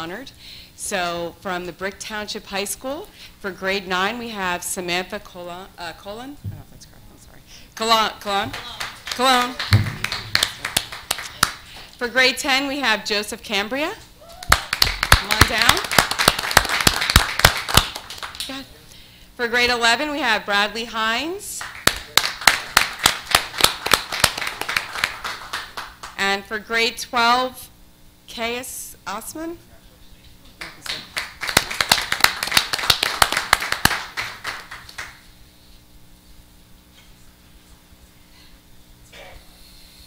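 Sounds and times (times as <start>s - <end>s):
people clapping: 8.4s - 12.0s, 14.4s - 18.6s, 21.6s - 26.2s, 30.6s - 35.3s
crowd applauding: 8.5s - 11.9s, 14.4s - 18.5s, 21.6s - 26.2s, 30.6s - 35.2s.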